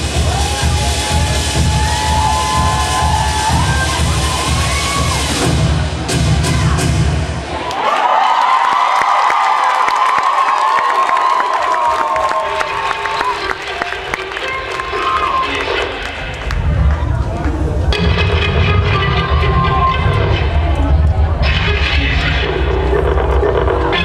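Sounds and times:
dance music with heavy bass beat: 0.0 - 7.4, 17.8 - 24.0
audience cheering and shouting: 0.0 - 17.2.

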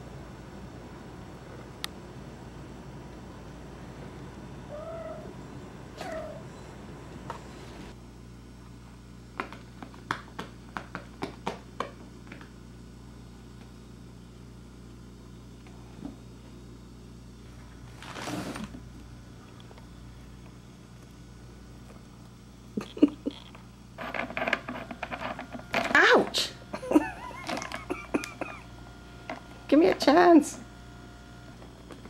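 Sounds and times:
cat meowing: 4.7 - 5.3, 6.0 - 6.5
rustling scrape: 17.9 - 18.8.

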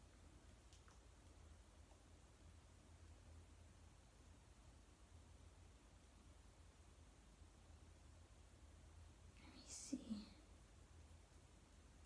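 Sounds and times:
faint low steady hum: 0.0 - 12.0
woman whispering: 9.4 - 10.5.

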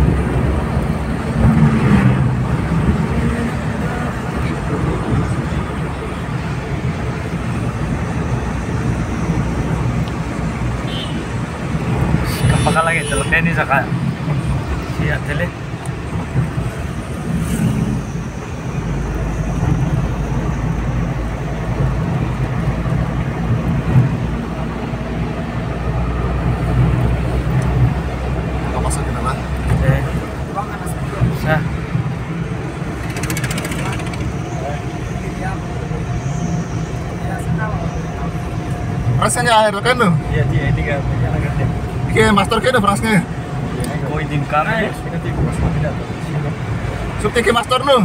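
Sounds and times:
vehicle engine and road rumble: 0.0 - 48.0.

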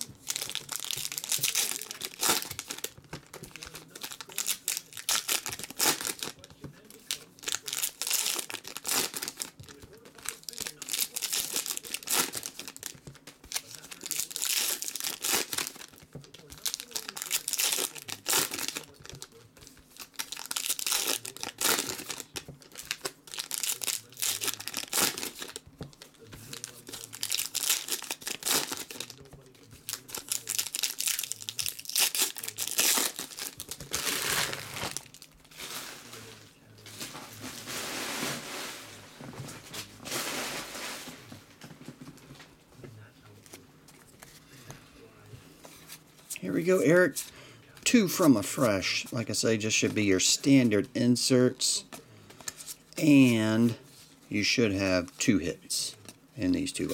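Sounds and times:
foil wrappers crinkling and tearing: 0.0 - 41.3, 45.8 - 53.8, 54.4 - 56.9.

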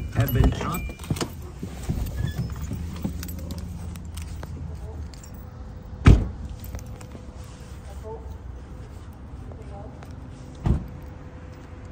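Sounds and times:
keys jangling: 0.0 - 7.4
car door shutting: 6.0 - 6.4, 10.6 - 11.0.

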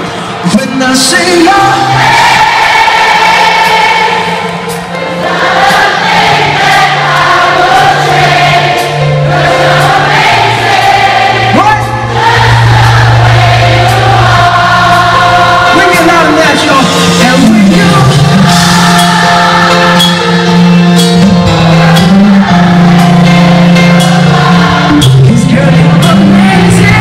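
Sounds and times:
live band music through pa: 0.0 - 27.0
choir-like sung chords: 1.7 - 16.3, 17.7 - 27.0
slow bass line: 20.5 - 27.0.

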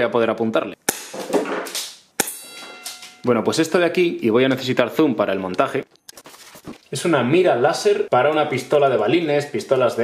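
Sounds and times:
short metallic ring: 2.2 - 3.3.

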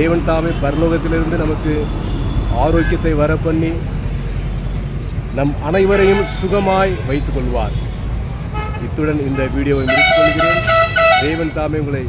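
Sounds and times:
street traffic rumble: 0.0 - 12.0
vehicle horn: 5.8 - 7.9, 8.5 - 11.7.

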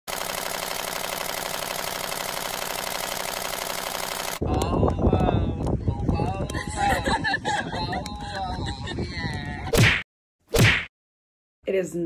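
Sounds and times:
rapid clatter: 0.1 - 4.4
people talking and laughing: 4.4 - 9.8.

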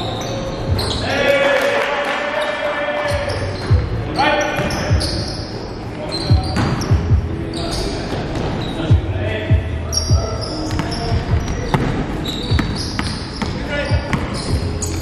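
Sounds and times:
sneaker squeaks: 0.0 - 1.2, 2.4 - 9.0, 9.8 - 15.0
basketball bouncing on wooden floor: 10.7 - 14.7.

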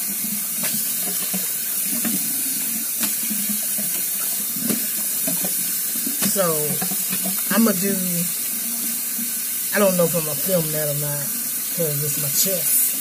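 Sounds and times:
water running from sink tap: 0.0 - 13.0.

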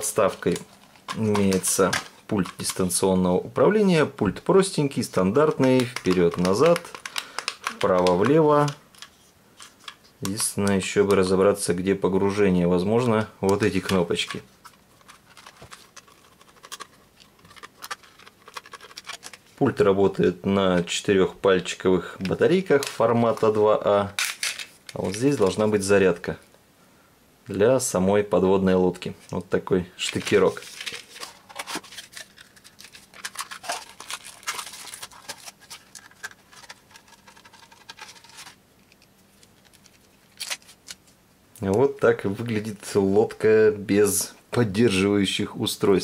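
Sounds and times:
plastic toy handling clicks: 5.5 - 10.5.

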